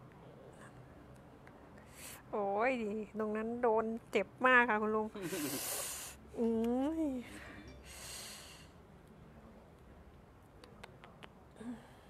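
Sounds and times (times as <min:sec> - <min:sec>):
woman breathy exhale: 0:07.8 - 0:08.7.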